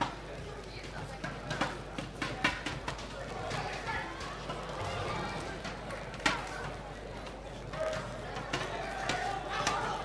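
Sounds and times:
sports hall noise: 0:00.0 - 0:10.0.

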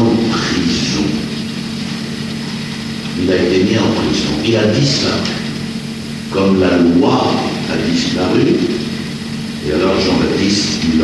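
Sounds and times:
tape hiss: 0:00.0 - 0:11.0.

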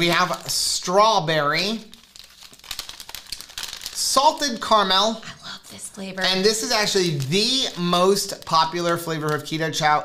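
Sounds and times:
packets crinkling: 0:00.0 - 0:10.0.

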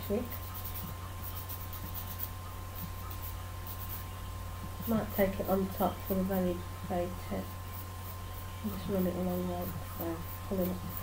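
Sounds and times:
pencil scratching on nail file: 0:00.0 - 0:06.4, 0:07.2 - 0:11.0
low electrical hum: 0:00.0 - 0:11.0.

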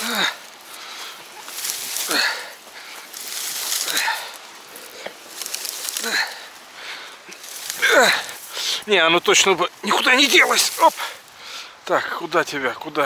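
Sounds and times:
man breathing hard and grunting: 0:00.0 - 0:01.2, 0:01.9 - 0:03.0, 0:05.9 - 0:08.9
log dragging over sand: 0:00.0 - 0:11.4
dry branches rustling and scraping: 0:00.0 - 0:13.0.

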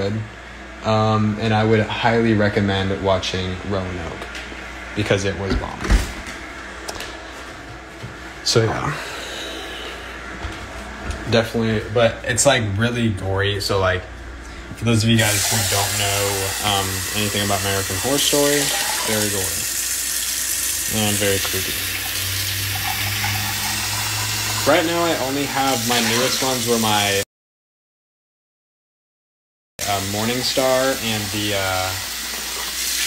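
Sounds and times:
steady background hum: 0:00.0 - 0:27.2.

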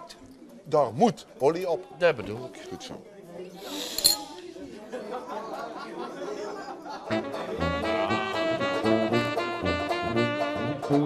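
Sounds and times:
murmur of voices: 0:00.0 - 0:09.0
sharp clink: 0:03.9 - 0:04.3.

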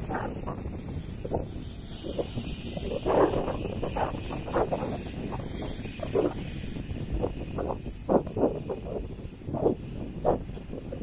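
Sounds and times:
lorries passing on highway: 0:00.0 - 0:11.0.

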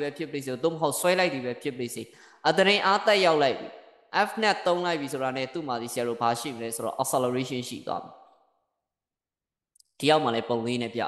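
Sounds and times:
person speaking: 0:00.0 - 0:08.1, 0:09.8 - 0:11.0
intake of breath: 0:02.1 - 0:02.4.

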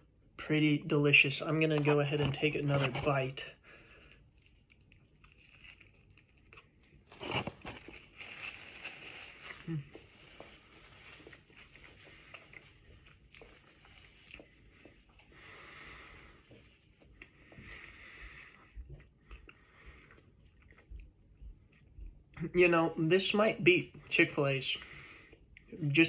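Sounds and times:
close chewing: 0:04.0 - 0:15.2, 0:18.5 - 0:22.2
crunchy bite into sandwich: 0:04.4 - 0:08.2.

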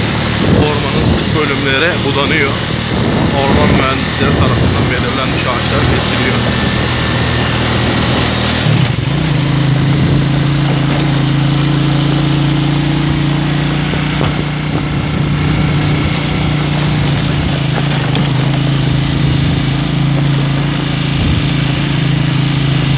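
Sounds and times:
motocross bike engine running: 0:00.0 - 0:22.9.

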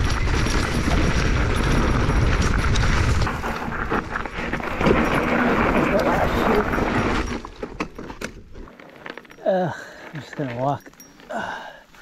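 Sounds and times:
bike clicks and rattles: 0:00.0 - 0:11.6
bike rolling on trail: 0:00.0 - 0:12.0.

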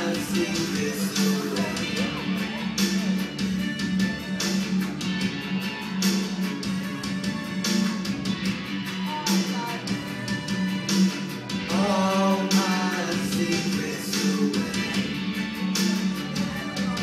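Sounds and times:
person singing: 0:00.0 - 0:03.5, 0:08.8 - 0:11.0, 0:11.6 - 0:17.0
strummed guitar over beat: 0:00.0 - 0:17.0.

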